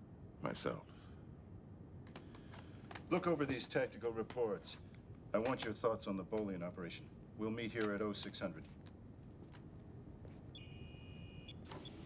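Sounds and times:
faint electronic beep: 10.5s - 12.0s.

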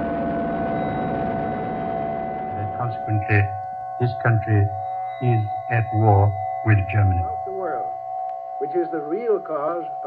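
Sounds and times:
recording hiss: 2.6s - 7.8s.

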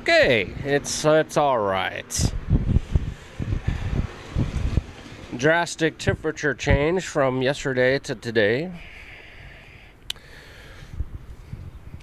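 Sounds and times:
wind buffeting microphone: 2.0s - 7.2s, 10.4s - 12.0s.

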